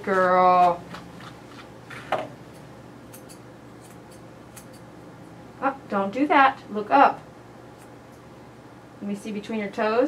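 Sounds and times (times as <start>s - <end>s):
shears snipping hair: 2.5s - 4.9s, 7.8s - 8.0s.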